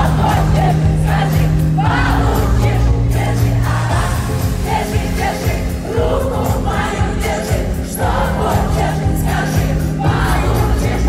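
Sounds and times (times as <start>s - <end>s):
amplified band music: 0.0s - 11.0s
arena crowd: 0.0s - 11.0s.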